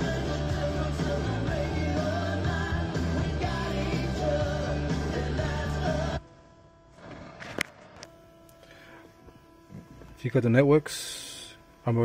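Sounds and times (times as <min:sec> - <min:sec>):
song on car radio: 0:00.0 - 0:07.2.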